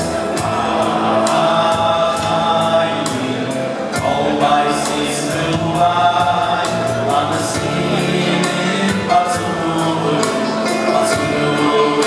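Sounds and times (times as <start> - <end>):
men's choir singing in harmony: 0.0 - 12.0
percussive backing beat: 0.0 - 12.0.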